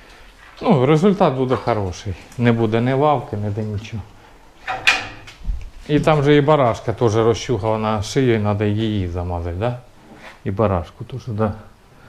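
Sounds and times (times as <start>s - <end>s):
metal gate scraping: 4.6s - 5.3s.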